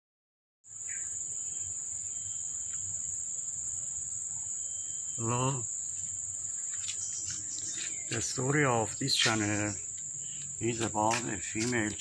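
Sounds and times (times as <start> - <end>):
high-pitched insect chorus: 0.7 - 12.0.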